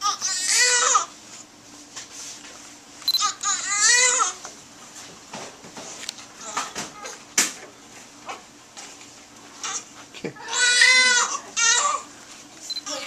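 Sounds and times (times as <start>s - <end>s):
newborn baby crying: 0.0s - 1.1s, 3.2s - 4.4s, 10.4s - 12.1s.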